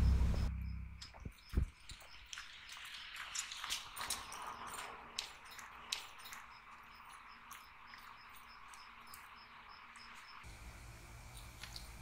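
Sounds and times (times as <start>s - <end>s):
faint crickets chirping: 0.0s - 12.0s.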